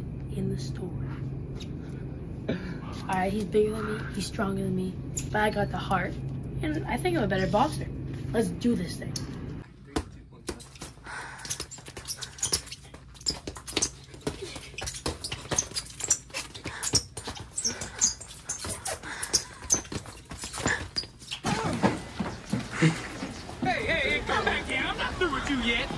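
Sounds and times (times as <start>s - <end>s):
boxing gloves punching: 9.9s - 22.2s.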